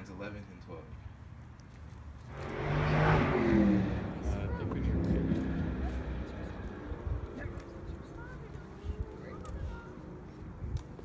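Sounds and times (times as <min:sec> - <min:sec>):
low rumble of traffic: 0:00.0 - 0:11.0
car passing by: 0:02.3 - 0:10.3.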